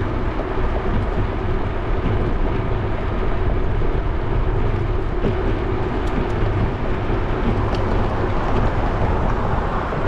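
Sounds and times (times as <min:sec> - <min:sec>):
wind noise on microphone: 0:00.0 - 0:10.0.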